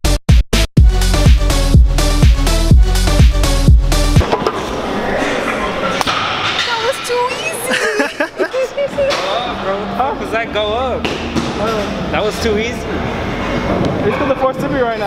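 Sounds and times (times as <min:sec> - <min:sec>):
music: 0:00.0 - 0:04.3
gym room noise: 0:04.2 - 0:15.0
young men laughing and whooping: 0:07.5 - 0:08.8.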